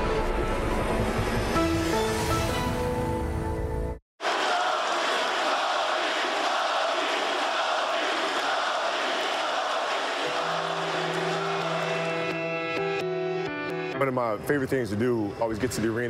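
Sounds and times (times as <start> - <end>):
large crowd cheering: 4.2 - 13.2.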